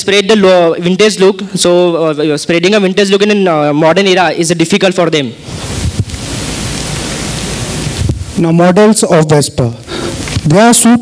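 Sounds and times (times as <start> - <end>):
static hiss: 3.7 - 11.0.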